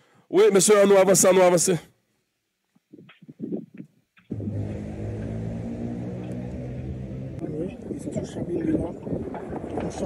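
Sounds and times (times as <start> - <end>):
low motor hum: 4.3 - 7.7.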